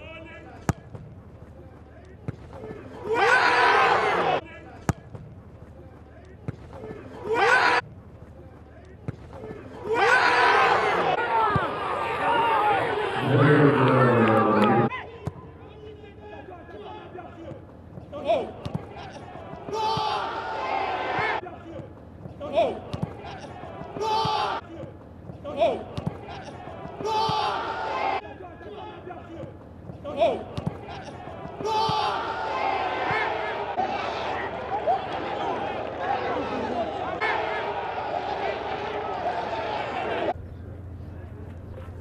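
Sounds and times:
player shouting: 3.0s - 4.4s, 7.2s - 7.8s, 9.8s - 15.1s, 19.3s - 21.4s, 22.5s - 24.6s, 25.5s - 29.1s, 30.1s - 40.3s.

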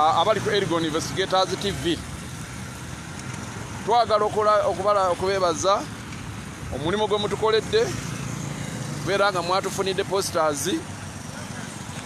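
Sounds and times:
road and wind noise: 0.0s - 12.0s.

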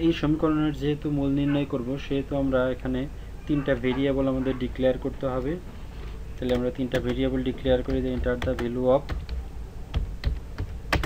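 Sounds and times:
typing on computer keyboard: 6.5s - 11.0s.

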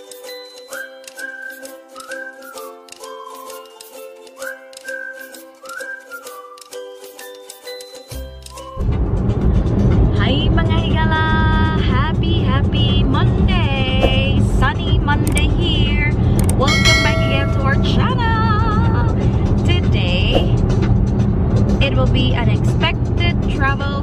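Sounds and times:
background music: 0.0s - 24.0s
road rumble inside car: 8.8s - 16.7s, 18.0s - 24.0s.

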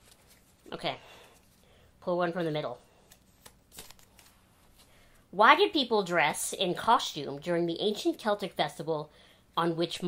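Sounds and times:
paper card rustling: 0.0s - 1.8s, 2.4s - 5.0s.

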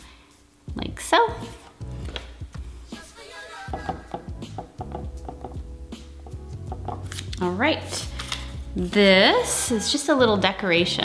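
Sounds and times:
music with steady beat: 1.4s - 9.3s.

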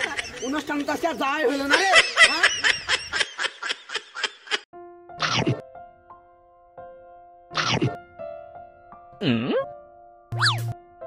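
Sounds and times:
background music with held notes: 4.7s - 11.0s.

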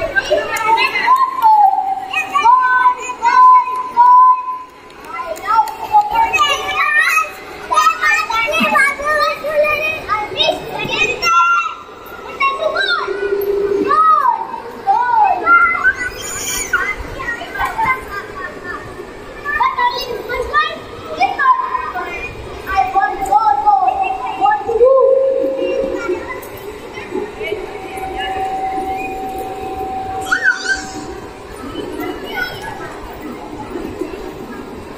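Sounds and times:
children's voices hubbub: 0.0s - 34.9s.

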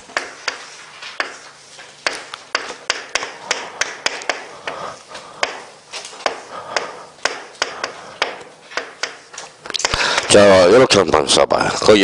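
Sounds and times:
chalk scratching: 0.0s - 5.7s
chalk tapping on blackboard: 0.0s - 10.3s.

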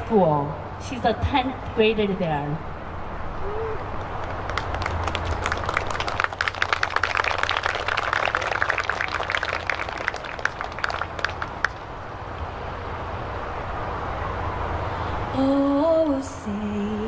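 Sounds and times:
small group applauding: 3.6s - 11.9s.

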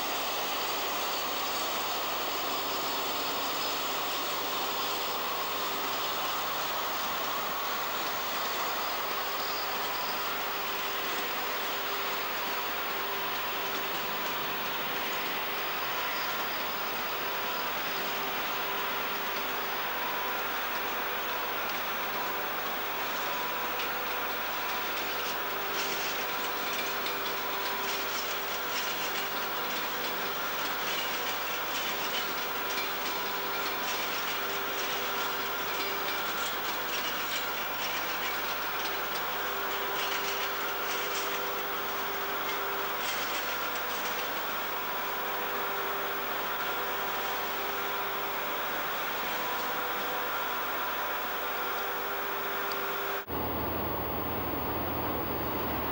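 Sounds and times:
constant hiss: 0.0s - 55.9s
train wheels clickety-clack: 21.6s - 44.7s.

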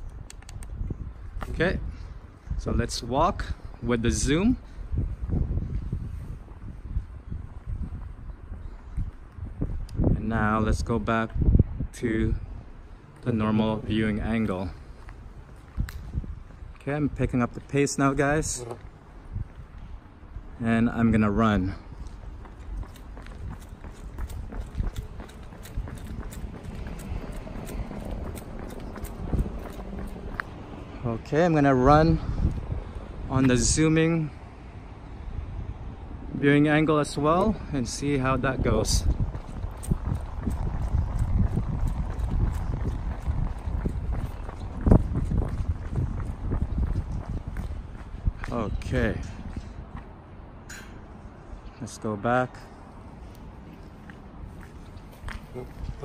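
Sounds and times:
steady low rumble: 0.0s - 56.0s
running footsteps on asphalt: 3.4s - 10.2s, 12.4s - 33.8s, 37.4s - 50.4s, 52.7s - 56.0s.

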